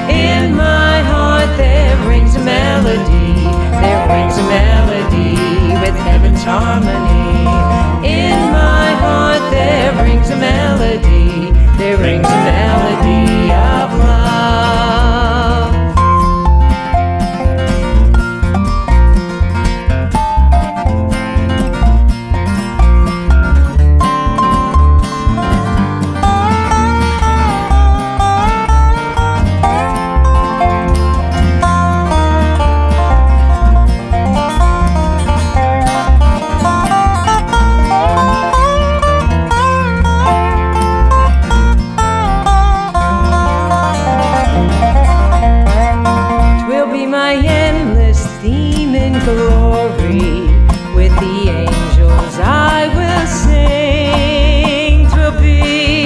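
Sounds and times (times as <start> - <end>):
lead instrument melody: 0.0 - 53.4
acoustic guitar: 0.0 - 56.0
bass line: 0.0 - 56.0.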